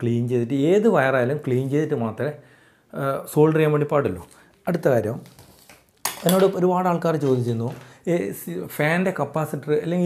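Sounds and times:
man talking: 0.0s - 5.3s, 6.2s - 10.0s.

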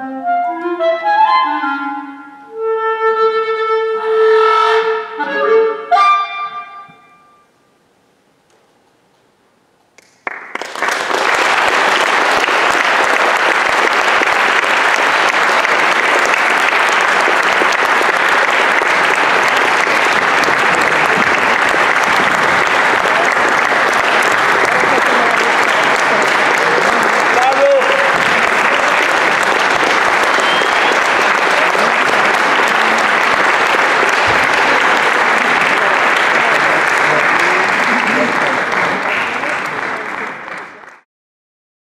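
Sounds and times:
audience applauding: 10.0s - 41.0s.

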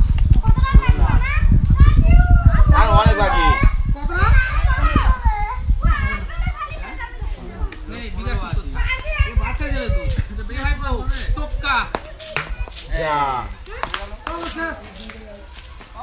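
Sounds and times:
children shouting: 0.4s - 7.6s.

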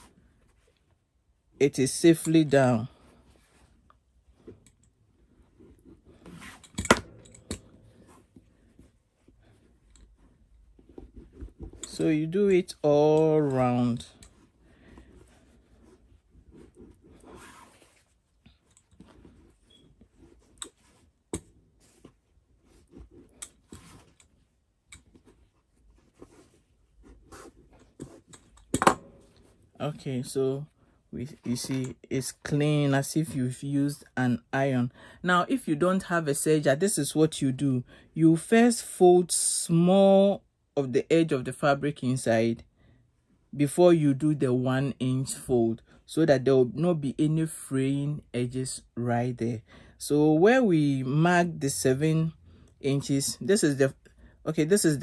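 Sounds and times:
fabric rustling: 2.7s - 31.8s.

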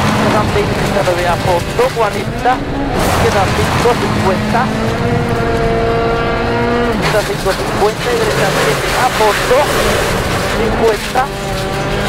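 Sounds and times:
co-driver calling pace notes: 0.0s - 12.0s
rally car engine from inside cabin: 0.0s - 12.0s.

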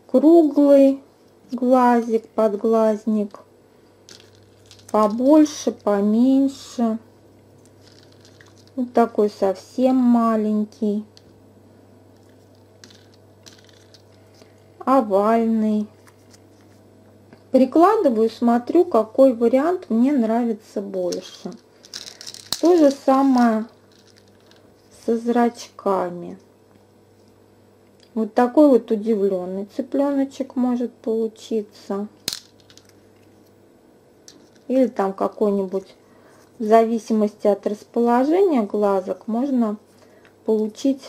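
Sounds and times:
beads clicking in plastic tray: 4.1s - 5.2s, 7.7s - 8.8s, 12.8s - 14.2s, 21.1s - 24.6s.

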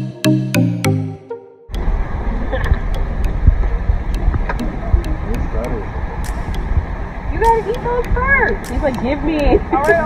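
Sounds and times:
wind rumbling on microphone: 1.7s - 10.0s
faint regular ticks: 2.6s - 6.8s, 7.4s - 10.0s.

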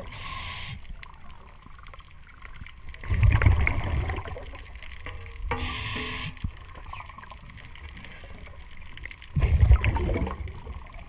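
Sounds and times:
low underwater hum: 0.0s - 11.0s
air bubbles rumbling underwater: 1.0s - 5.6s, 6.3s - 11.0s.

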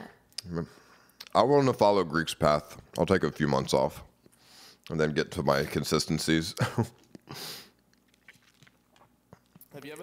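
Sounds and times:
person chewing food: 7.0s - 9.8s.

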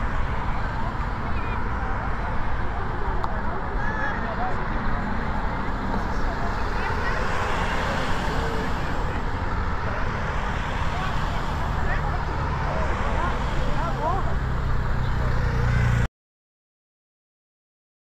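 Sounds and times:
cars driving past: 0.0s - 16.1s
spectators chatting: 0.0s - 16.1s.

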